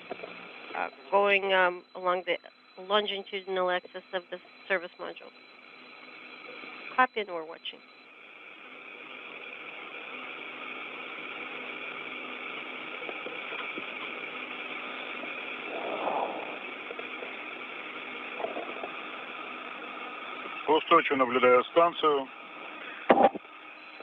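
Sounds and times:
radio channel hiss and hum: 0.0s - 24.0s
steady radio tones: 0.0s - 24.0s.

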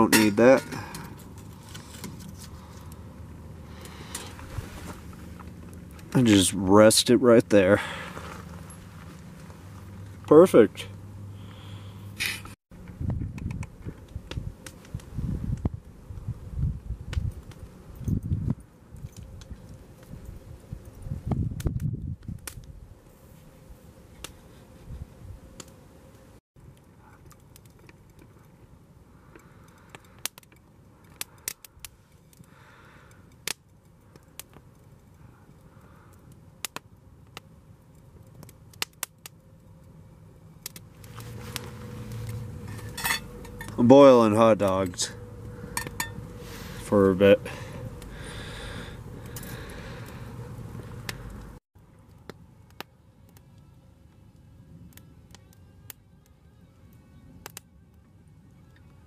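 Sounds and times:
campfire crackling and popping: 0.0s - 23.2s, 25.5s - 56.4s, 57.4s - 59.0s
wind rumbling on microphone: 12.8s - 23.0s.

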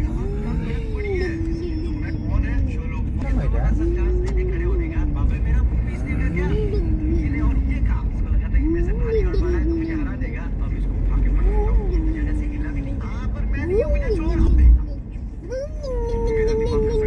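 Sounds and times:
voice holding drawn-out tones: 0.0s - 5.2s, 5.9s - 7.7s, 8.6s - 10.2s, 11.4s - 13.0s
car engine and tyres rumbling: 0.0s - 17.0s.

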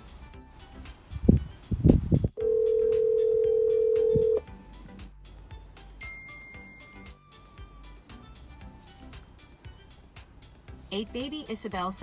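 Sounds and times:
telephone call tone: 2.4s - 4.4s.

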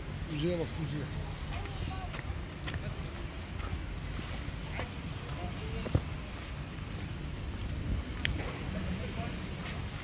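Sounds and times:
distant people talking: 0.3s - 6.8s.

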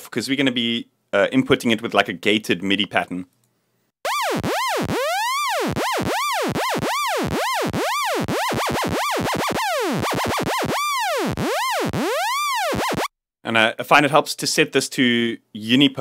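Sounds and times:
swooping sawtooth synth lead: 4.1s - 13.1s.

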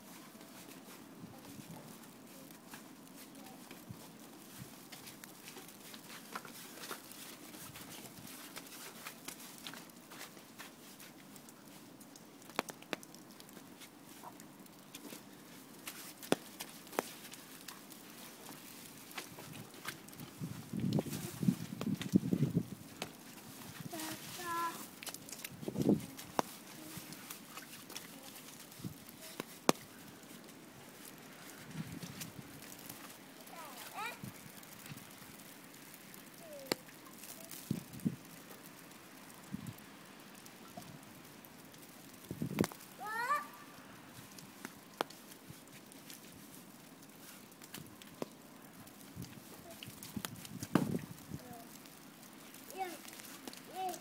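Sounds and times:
low rustle: 0.0s - 54.0s.

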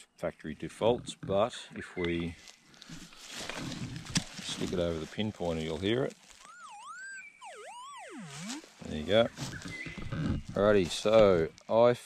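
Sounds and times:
metal detector warbling tone: 6.5s - 11.4s.

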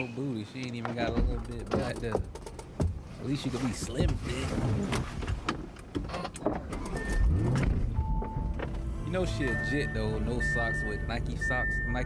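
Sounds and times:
short electronic car chime: 9.3s - 12.0s.

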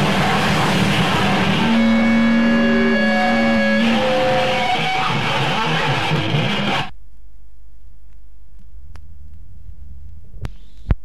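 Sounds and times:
harsh distorted noise music: 0.0s - 6.9s
wobbling low drone: 0.0s - 6.9s
low hum: 0.0s - 10.7s.

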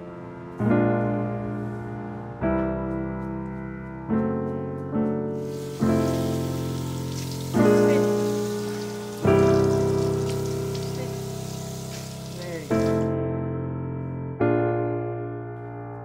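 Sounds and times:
soft piano chords: 0.0s - 16.0s
tap running into sink: 5.5s - 13.0s.

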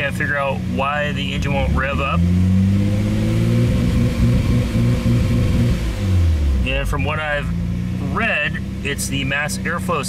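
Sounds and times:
car engine revving and stuttering: 0.0s - 10.0s.

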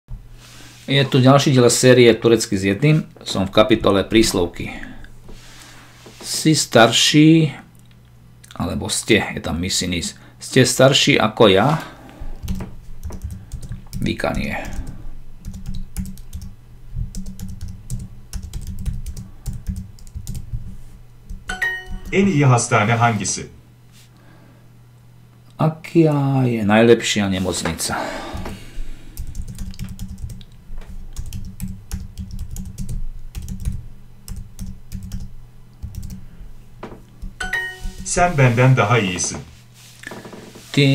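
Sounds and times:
computer keyboard typing: 12.4s - 16.5s, 17.1s - 20.5s, 21.3s - 22.2s, 29.2s - 36.2s.

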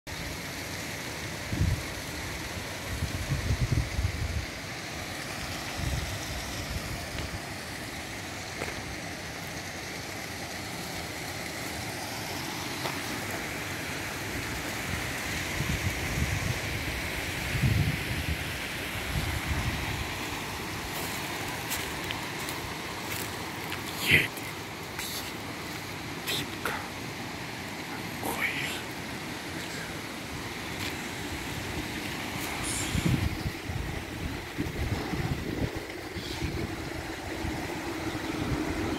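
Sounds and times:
river rushing: 0.1s - 38.9s
wind buffeting microphone: 3.0s - 4.5s, 15.5s - 20.2s, 31.3s - 38.9s.

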